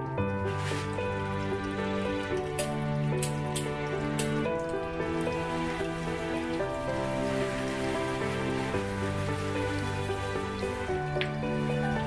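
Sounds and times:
calm background music: 0:00.0 - 0:12.0
water pattering: 0:00.0 - 0:12.0.

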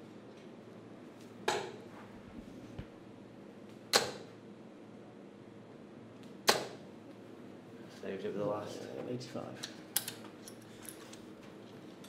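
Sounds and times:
darts hitting dartboard: 0:01.5 - 0:01.8, 0:03.9 - 0:04.3, 0:06.5 - 0:06.8.

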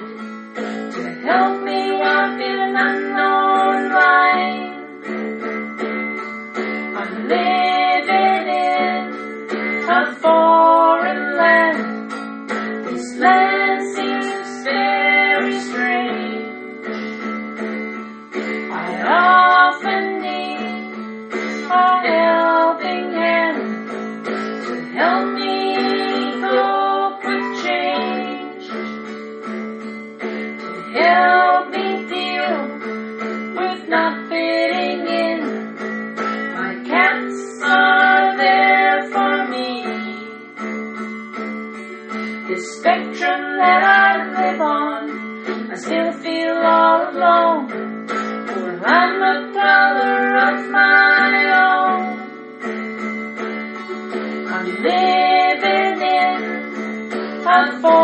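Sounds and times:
acoustic guitar: 0:00.0 - 0:58.0
woman singing: 0:01.0 - 0:05.1, 0:06.9 - 0:12.0, 0:12.8 - 0:16.7, 0:18.7 - 0:23.8, 0:24.7 - 0:29.0, 0:30.7 - 0:32.9, 0:33.5 - 0:35.8, 0:36.5 - 0:40.3, 0:42.3 - 0:47.9, 0:48.5 - 0:52.4, 0:54.4 - 0:56.8, 0:57.4 - 0:58.0.

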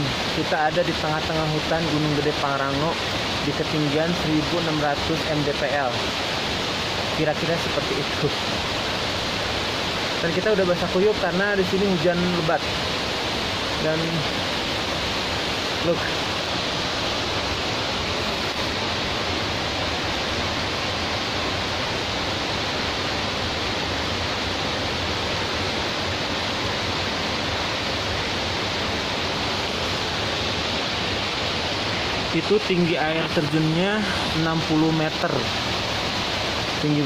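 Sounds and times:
waterfall rushing: 0:00.0 - 0:37.0.

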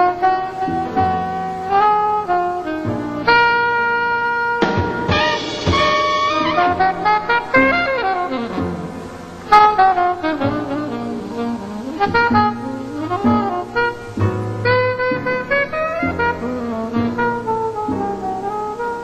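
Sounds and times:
saxophone solo: 0:00.0 - 0:19.0
drums with cymbals: 0:04.6 - 0:08.1.

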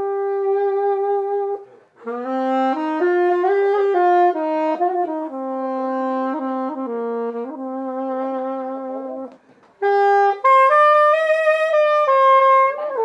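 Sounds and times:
solo saxophone melody: 0:00.0 - 0:13.0.

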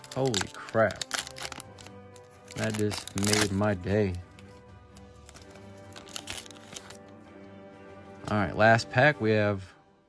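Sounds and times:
foil wrapper crinkling and tearing: 0:00.0 - 0:07.1
soft background music: 0:00.0 - 0:10.0.

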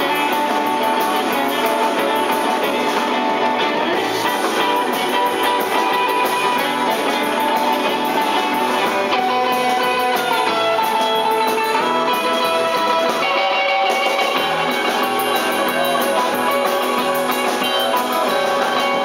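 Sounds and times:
drums: 0:00.0 - 0:19.0
electric guitars: 0:00.0 - 0:19.0.

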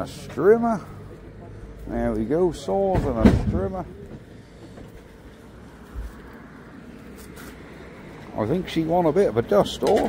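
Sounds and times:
dull thump: 0:02.9 - 0:03.8.

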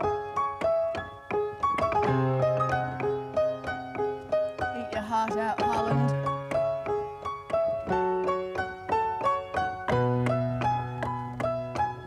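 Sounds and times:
bright piano chords: 0:00.0 - 0:12.0.

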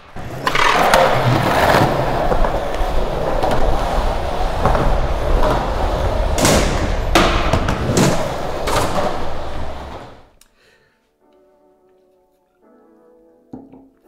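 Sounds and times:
skateboard wheels rolling on concrete: 0:00.0 - 0:10.4
skateboard clacking on ground: 0:00.2 - 0:10.2.

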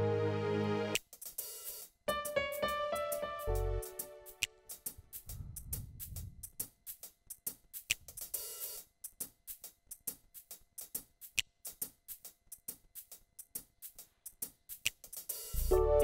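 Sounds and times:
hi-hat ticks: 0:01.0 - 0:16.0
low keyboard note: 0:15.6 - 0:16.0.

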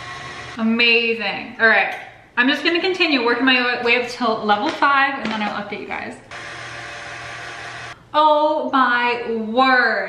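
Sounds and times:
stand mixer motor running: 0:00.0 - 0:00.6, 0:06.3 - 0:08.0.

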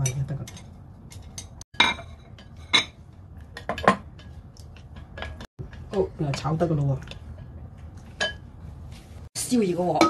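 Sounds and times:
chopsticks stirring egg in bowl: 0:02.2 - 0:08.4.

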